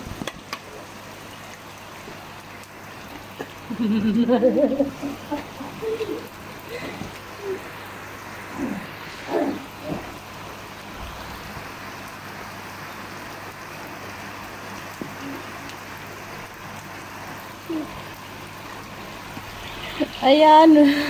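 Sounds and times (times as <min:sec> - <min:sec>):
rain falling on water: 0:00.0 - 0:21.0.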